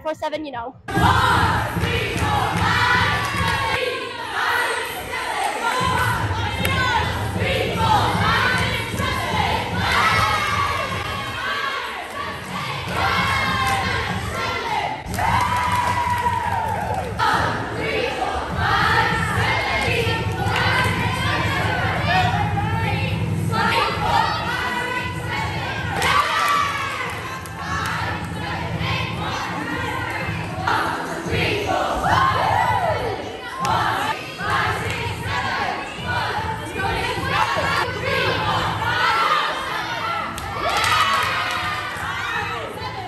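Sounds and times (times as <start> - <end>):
young women shouting and cheering: 0.9 - 43.0.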